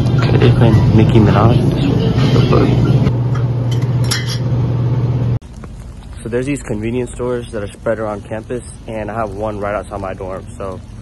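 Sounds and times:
refrigerator hum: 0.0s - 11.0s
glass bottles clinking: 3.3s - 4.5s.

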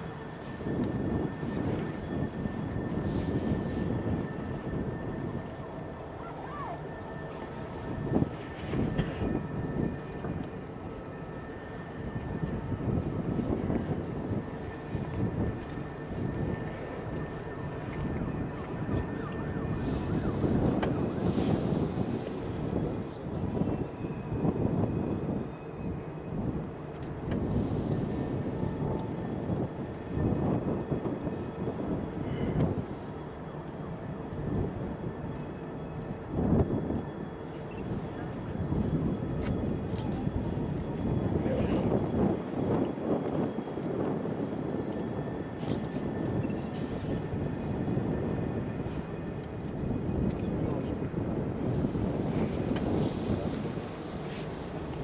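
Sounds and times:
gusty wind on microphone: 0.0s - 55.0s.

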